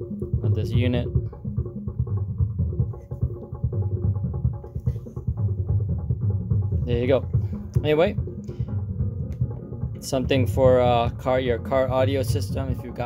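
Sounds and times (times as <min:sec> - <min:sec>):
bass-heavy music with steady beat: 0:00.0 - 0:13.0.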